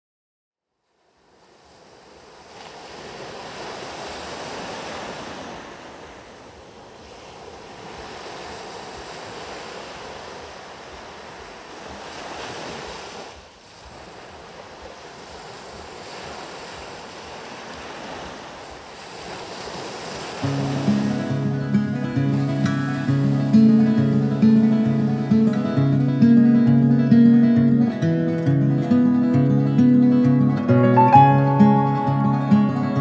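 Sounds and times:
sea surf washing onto beach: 1.2s - 27.4s.

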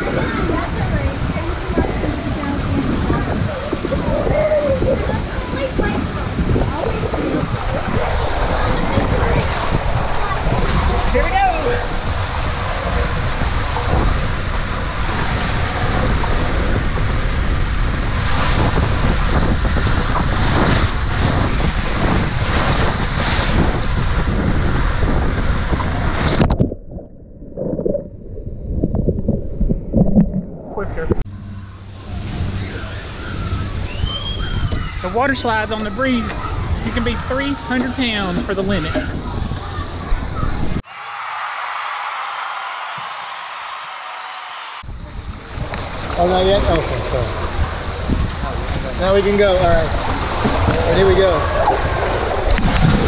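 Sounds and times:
water rushing in a slide tube: 0.0s - 31.2s, 31.8s - 53.0s
muffled low water surging: 0.0s - 53.0s.

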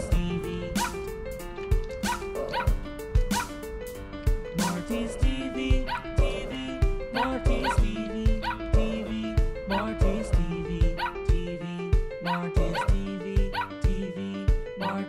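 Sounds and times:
upbeat music with drum beat: 0.0s - 14.8s.

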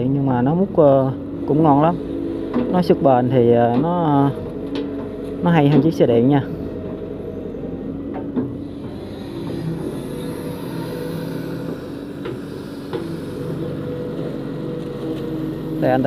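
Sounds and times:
excavator diesel engine running: 0.0s - 16.0s.

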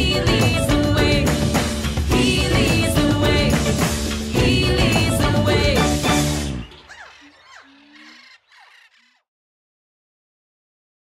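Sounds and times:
short falling calls: 6.1s - 9.2s.

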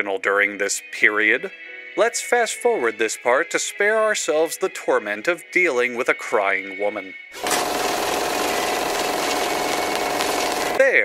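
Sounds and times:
fast-forward whirring buzz: 7.4s - 10.8s.

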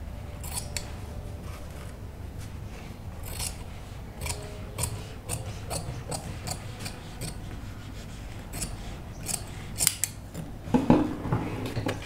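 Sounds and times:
shears snipping fabric: 0.4s - 2.0s, 3.2s - 10.2s.

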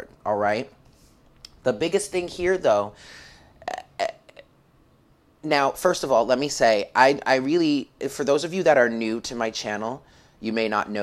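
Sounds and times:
woman breathing in: 3.0s - 3.6s, 10.0s - 10.4s.

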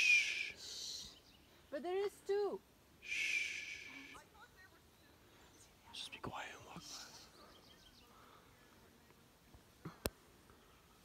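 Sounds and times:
soft whisper: 5.1s - 9.2s.

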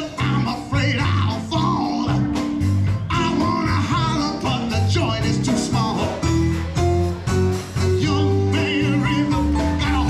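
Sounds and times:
person singing: 0.0s - 6.7s, 7.8s - 10.0s
live band playing: 0.0s - 10.0s.

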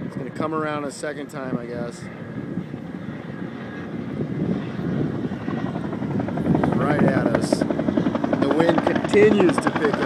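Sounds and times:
helicopter rotor chop: 0.0s - 10.0s.

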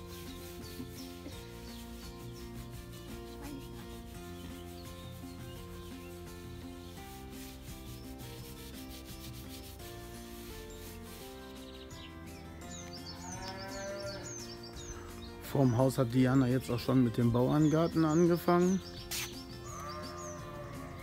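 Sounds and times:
hands scratching pig's hide: 0.0s - 12.0s, 19.0s - 20.2s
soft background music: 0.0s - 21.0s.

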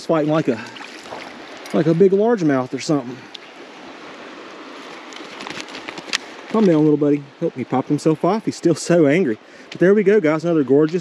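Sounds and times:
creek rushing: 0.0s - 11.0s
fish flopping in net: 4.9s - 6.3s.

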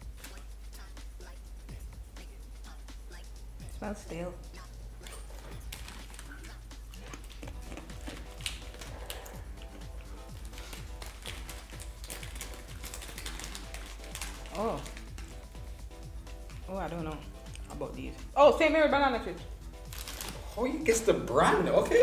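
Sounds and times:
quiet background music: 0.0s - 22.0s
crunchy chips being chewed: 5.0s - 15.7s, 17.3s - 17.7s, 19.8s - 20.6s.

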